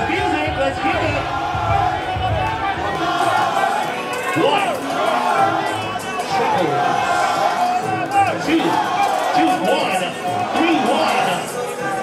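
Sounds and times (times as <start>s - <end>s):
crowd shouting and chattering: 0.0s - 12.0s
music in a big hall: 0.0s - 12.0s.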